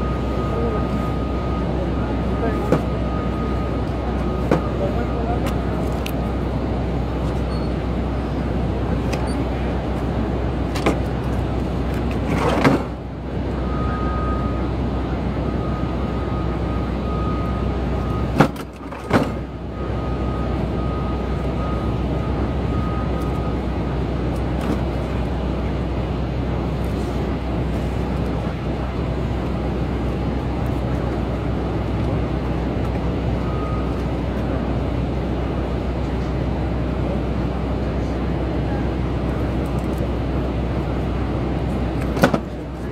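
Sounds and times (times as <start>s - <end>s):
city street traffic: 0.0s - 42.9s
constant low hum: 0.0s - 42.9s.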